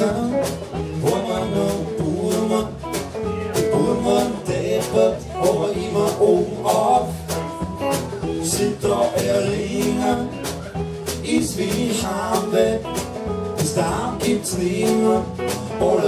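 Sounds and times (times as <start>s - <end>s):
bass guitar: 0.0s - 16.0s
electric guitar: 0.0s - 16.0s
man singing: 0.0s - 16.0s
steady drum beat: 0.0s - 16.0s.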